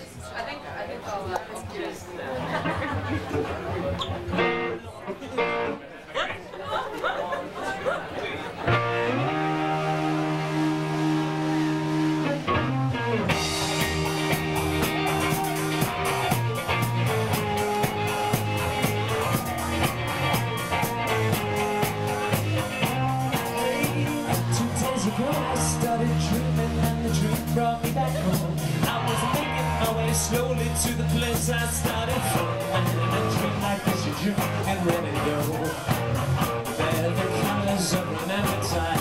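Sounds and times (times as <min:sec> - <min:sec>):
crowd chatter: 0:00.0 - 0:39.0
electric guitar: 0:02.4 - 0:05.8, 0:08.6 - 0:39.0
live rock band playing: 0:02.5 - 0:05.8, 0:08.6 - 0:39.0.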